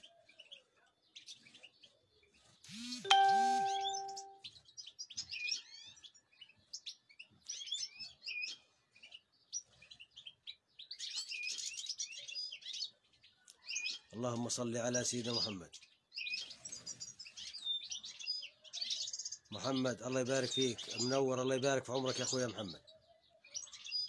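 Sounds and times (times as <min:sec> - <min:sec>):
short ringing chime: 0:03.1 - 0:04.4.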